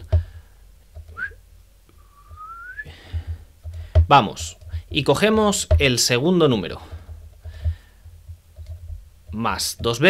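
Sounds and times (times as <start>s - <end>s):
person whistling softly: 1.1s - 1.4s, 2.0s - 2.9s.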